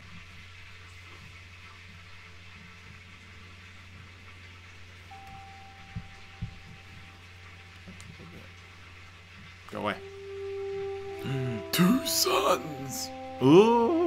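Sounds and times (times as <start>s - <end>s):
low background hum: 0.0s - 14.0s.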